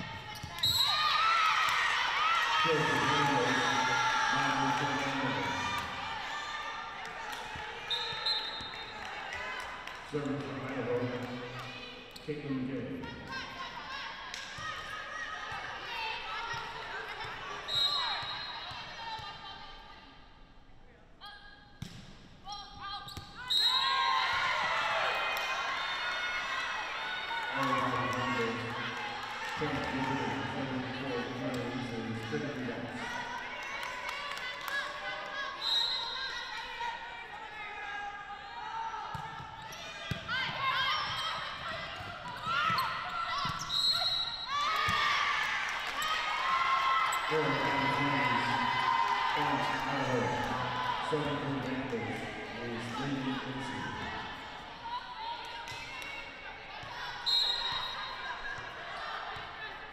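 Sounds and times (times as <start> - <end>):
players shouting: 44.5 - 59.9.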